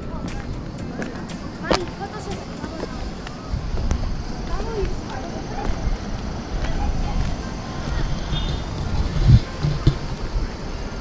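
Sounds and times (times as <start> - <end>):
faint ticking background music: 0.0 - 5.2, 6.0 - 11.0
wind buffeting microphone: 0.0 - 11.0.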